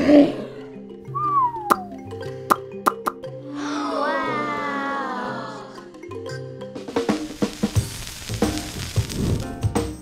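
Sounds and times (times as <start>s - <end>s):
bouncy cartoon music: 1.0s - 4.1s.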